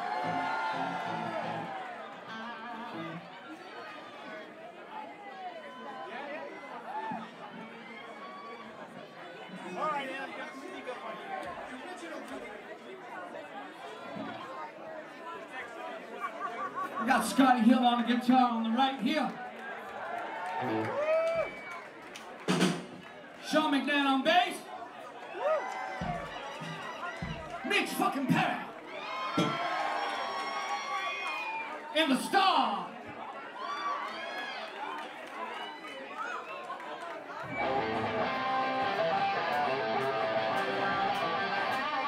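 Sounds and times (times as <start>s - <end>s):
electric guitar bending notes: 2.8s - 3.2s, 37.5s - 42.0s
live rock band music: 37.5s - 42.0s.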